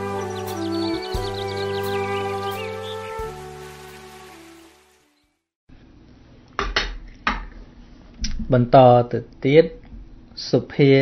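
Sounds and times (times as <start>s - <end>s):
intro music: 0.0s - 5.3s.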